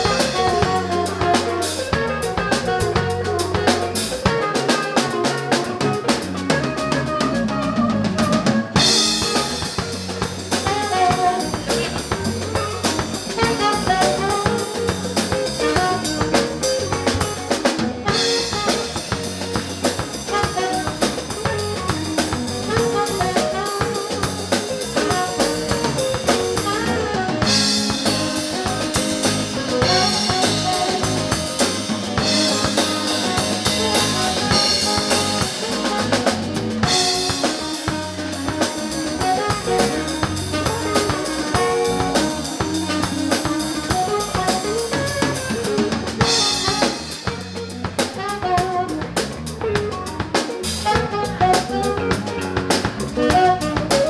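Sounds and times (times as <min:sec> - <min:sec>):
cymbals: 0:00.0 - 0:54.0
drum kit beat: 0:00.0 - 0:54.0
electric bass: 0:00.0 - 0:54.0
electric guitar: 0:00.0 - 0:54.0
saxophone: 0:00.0 - 0:54.0.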